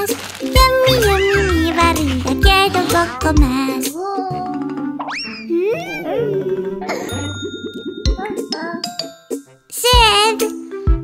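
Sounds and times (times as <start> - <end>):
light backing music: 0.0 - 11.0
wavering falling tones: 5.2 - 9.4.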